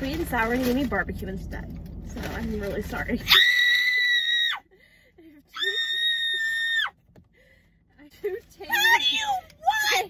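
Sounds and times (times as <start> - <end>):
woman screaming: 3.3 - 4.6, 5.5 - 6.9.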